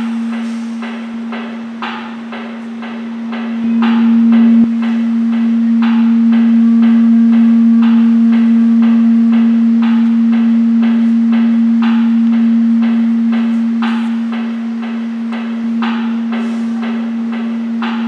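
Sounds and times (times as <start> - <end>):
steady low drone: 0.0 - 18.0
amplified string instrument notes: 3.5 - 17.9.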